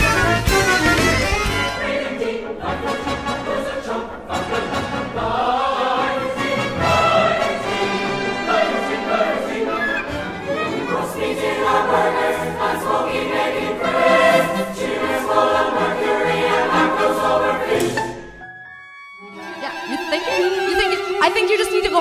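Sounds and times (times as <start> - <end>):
choir singing: 1.2 - 18.3.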